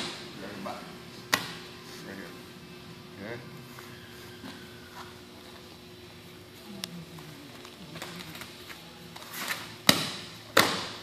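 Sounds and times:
sharp slaps on a mat: 0:01.3 - 0:01.6, 0:09.5 - 0:11.0
bodies hitting a training mat: 0:09.8 - 0:11.0.

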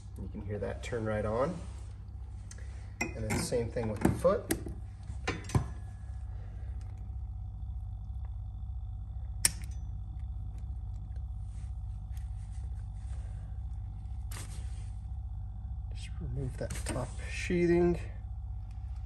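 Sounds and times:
vibration motor humming: 0:00.0 - 0:19.0
sharp click: 0:09.4 - 0:09.9
short rustle: 0:11.4 - 0:15.1.

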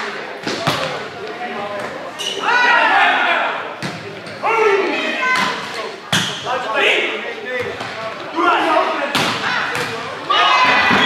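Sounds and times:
players shouting and cheering: 0:00.0 - 0:11.0.

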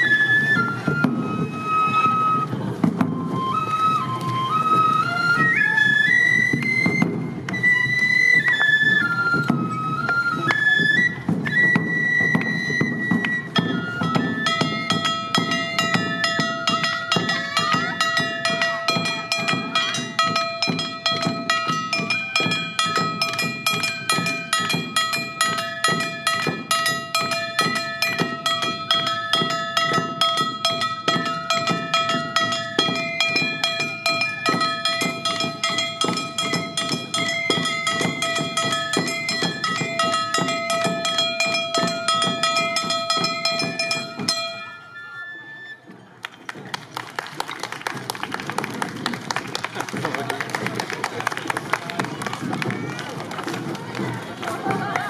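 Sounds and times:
bamboo flutes playing melody: 0:00.0 - 0:46.2
voices: 0:00.0 - 0:55.0
barrel drums beating: 0:11.2 - 0:44.6
people clapping: 0:46.2 - 0:55.0.

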